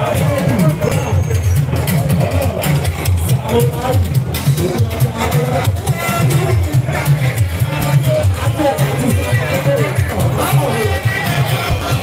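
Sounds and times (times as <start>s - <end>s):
crowd voices: 0.0s - 12.0s
party music over sound system: 0.0s - 12.0s.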